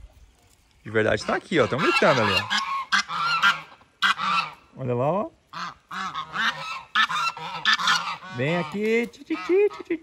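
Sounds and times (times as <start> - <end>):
geese honking: 1.1 - 4.8, 5.5 - 10.0.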